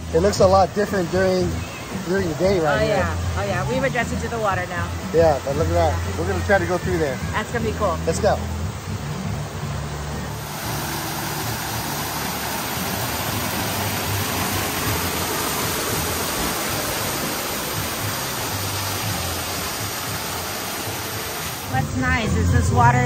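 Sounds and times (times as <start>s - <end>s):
waterfall rushing and splashing: 0.0s - 23.0s.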